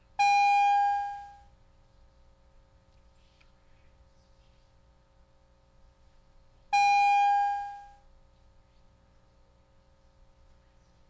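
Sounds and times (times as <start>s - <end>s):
faint steady hum: 0.0s - 11.0s
loud bell tone: 0.2s - 1.5s, 6.8s - 8.0s.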